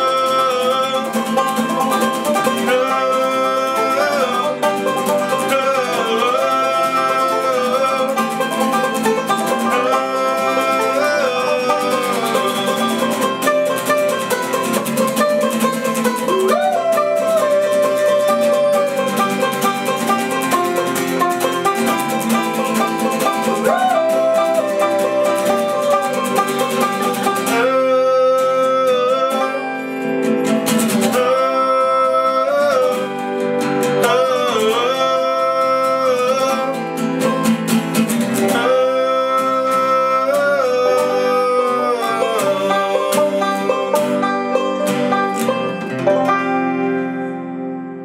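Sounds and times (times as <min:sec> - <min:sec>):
man singing: 0:00.0 - 0:46.2
acoustic guitar strumming: 0:00.0 - 0:48.0
banjo picking: 0:00.0 - 0:48.0.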